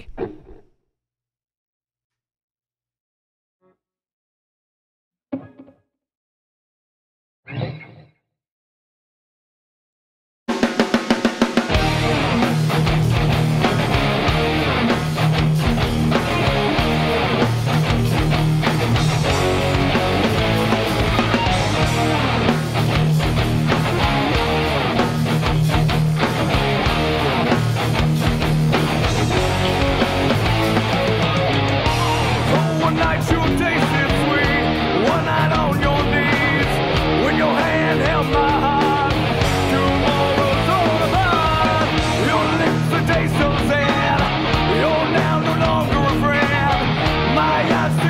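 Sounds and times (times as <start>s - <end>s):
rock backing track with drums: 10.5s - 48.0s
electric guitar playing: 11.6s - 48.0s.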